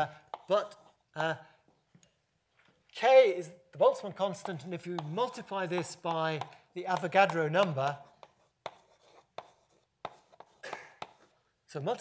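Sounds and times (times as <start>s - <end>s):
chalk tapping on blackboard: 0.2s - 0.8s, 4.2s - 11.3s
chalk scratching: 4.2s - 11.4s.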